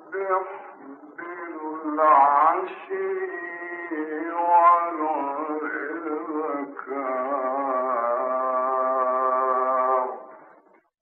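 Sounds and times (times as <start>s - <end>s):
man reciting a long sung note: 0.0s - 10.6s.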